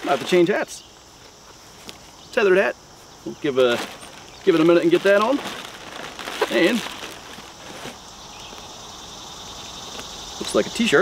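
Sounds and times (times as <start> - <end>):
insect chorus trilling: 0.0 - 11.0.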